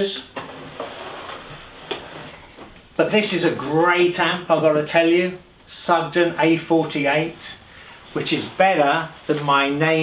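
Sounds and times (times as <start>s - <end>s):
amplifier scraping on wooden tabletop: 0.4s - 2.7s.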